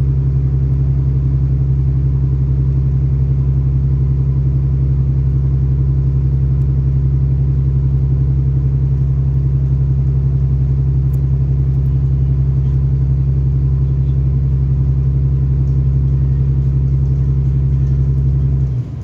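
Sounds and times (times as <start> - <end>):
train diesel engine drone: 0.0 - 19.0.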